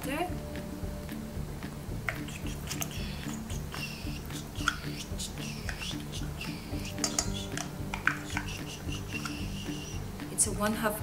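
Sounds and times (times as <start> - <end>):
spatula scraping plastic cup: 2.1 - 3.6, 4.4 - 10.0
utensil clinking: 6.7 - 10.0.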